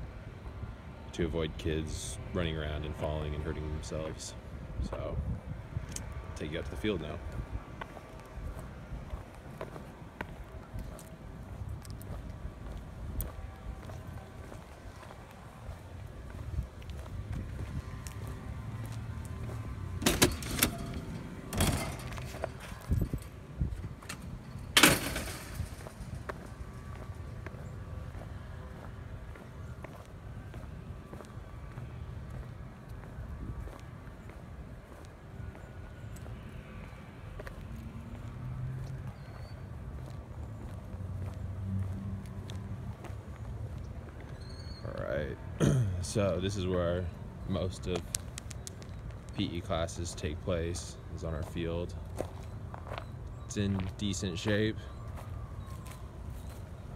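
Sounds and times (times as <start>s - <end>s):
wind and handling rumble: 2.9s - 54.2s.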